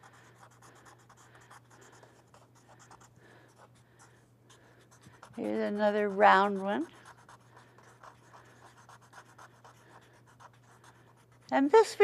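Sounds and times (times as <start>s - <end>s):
pencil scratching on paper: 0.0s - 11.9s.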